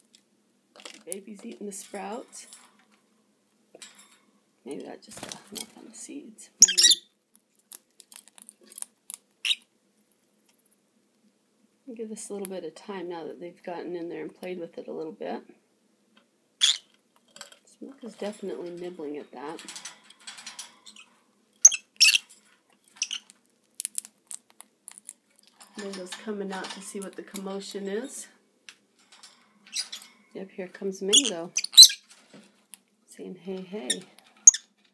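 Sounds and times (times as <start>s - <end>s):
birds pecking at seed: 7.3s - 9.5s, 19.8s - 26.2s.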